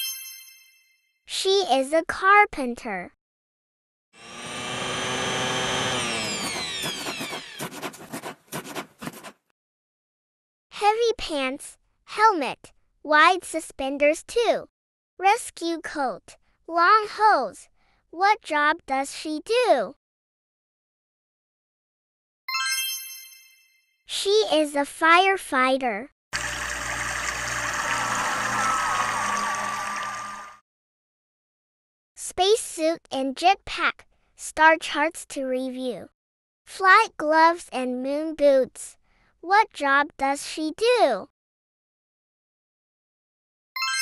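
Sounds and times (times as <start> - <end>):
electric power tool whining: 4.2 - 7.7.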